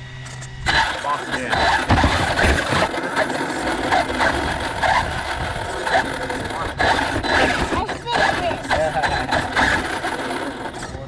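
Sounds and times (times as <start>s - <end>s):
low rumbling noise: 0.0s - 11.0s
indistinct voices: 0.7s - 11.0s.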